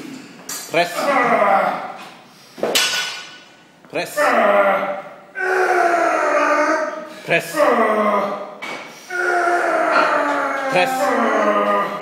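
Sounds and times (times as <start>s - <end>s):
man groaning with strain: 9.1s - 12.0s.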